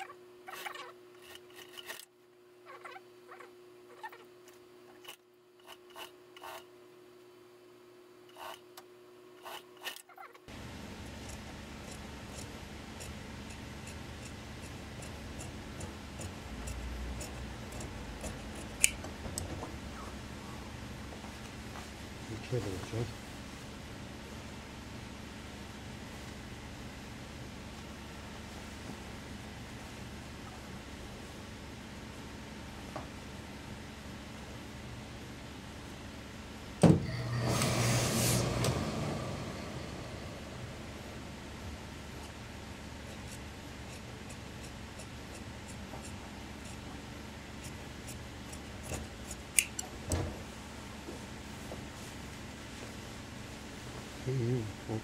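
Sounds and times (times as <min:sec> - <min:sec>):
low room hum: 0:00.0 - 0:55.0.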